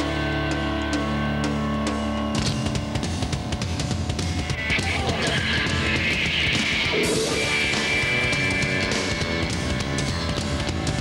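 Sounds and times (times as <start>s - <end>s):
drums: 0.0s - 11.0s
rock band playing live: 0.0s - 11.0s
bass note: 4.5s - 11.0s
distorted electric guitar chord: 4.5s - 11.0s.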